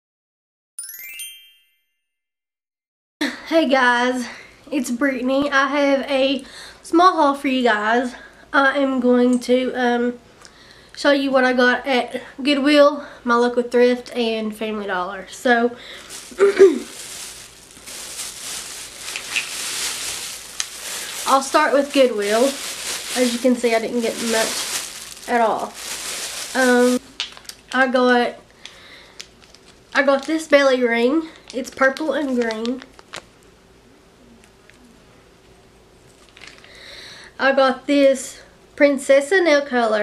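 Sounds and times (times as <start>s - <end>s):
shimmering chime ding: 0.8s - 2.1s
plastic bag rustling: 15.8s - 27.8s, 29.2s - 30.6s, 31.3s - 33.3s, 36.1s - 36.7s.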